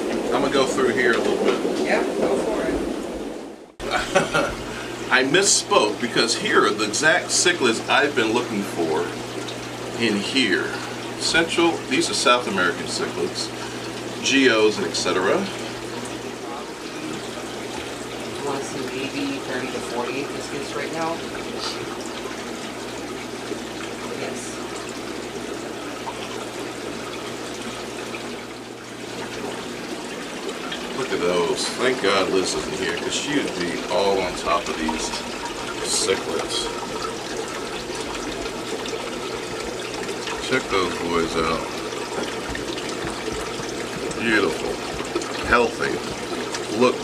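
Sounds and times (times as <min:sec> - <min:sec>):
low steady hum: 0:00.0 - 0:47.0
water trickling and splashing: 0:00.0 - 0:47.0.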